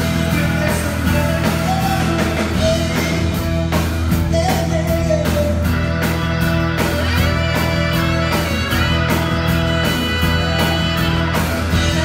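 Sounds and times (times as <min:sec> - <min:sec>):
person singing: 0:00.0 - 0:03.4, 0:04.2 - 0:06.3, 0:10.0 - 0:12.0
drums: 0:00.0 - 0:12.0
organ chords: 0:00.0 - 0:12.0.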